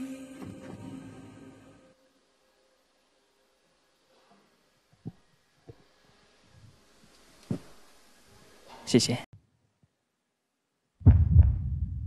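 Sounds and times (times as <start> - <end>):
soft low thumps: 11.0 - 12.0.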